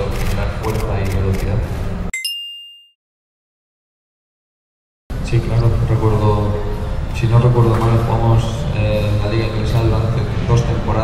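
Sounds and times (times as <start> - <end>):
two-note bell chime: 2.2 - 3.0.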